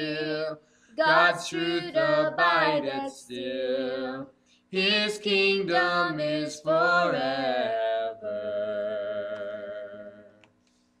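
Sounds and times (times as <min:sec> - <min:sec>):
man and woman singing a hymn: 0:00.0 - 0:10.4.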